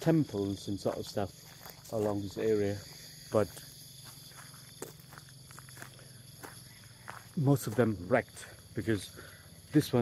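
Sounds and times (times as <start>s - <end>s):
crickets chirping: 0.0s - 10.0s
soft footsteps: 0.3s - 8.0s.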